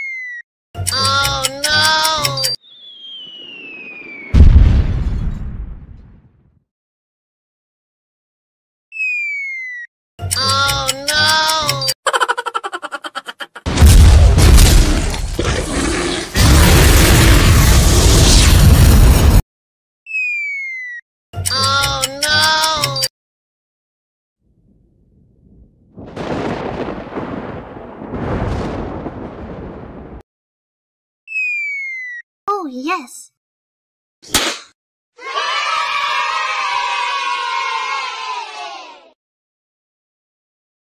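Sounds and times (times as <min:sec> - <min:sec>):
whistle tone gliding downward: 0:02.4 - 0:04.4
rolling thunder claps: 0:03.5 - 0:06.4, 0:25.1 - 0:30.2.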